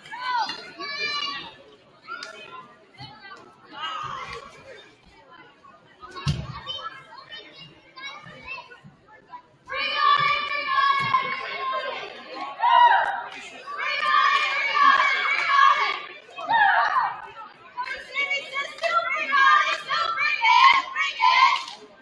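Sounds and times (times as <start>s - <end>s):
children calling and chattering: 0.0s - 22.0s.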